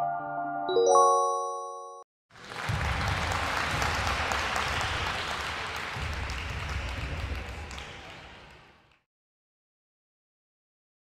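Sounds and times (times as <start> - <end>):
crowd clapping: 2.3 - 9.1.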